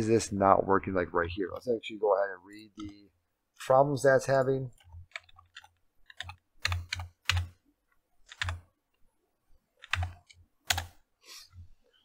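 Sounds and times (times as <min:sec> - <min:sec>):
computer keyboard typing: 0:04.7 - 0:07.6, 0:08.2 - 0:08.7, 0:09.8 - 0:11.0.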